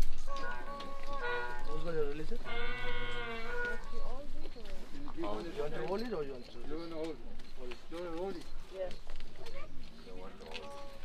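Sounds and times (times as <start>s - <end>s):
person holding a long note: 0.0s - 4.2s.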